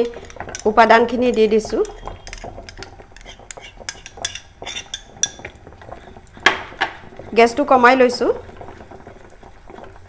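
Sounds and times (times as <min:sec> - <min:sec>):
spoon scraping steel pot: 0:00.0 - 0:10.0
spoon clinking on glass bowl: 0:01.3 - 0:05.5.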